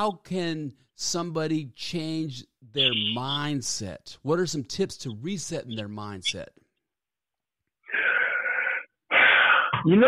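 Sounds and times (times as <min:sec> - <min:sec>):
man breathing: 0:07.9 - 0:09.8.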